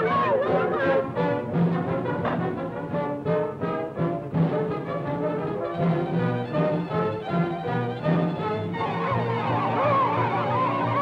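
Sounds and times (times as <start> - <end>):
orchestral cartoon music with brass: 0.0 - 11.0.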